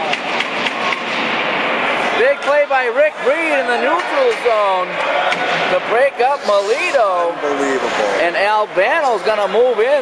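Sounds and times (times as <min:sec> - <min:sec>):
crowd cheering and clapping: 0:00.0 - 0:05.9.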